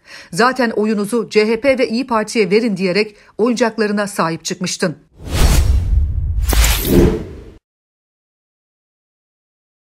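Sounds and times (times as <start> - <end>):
bright whoosh: 5.3 - 7.6.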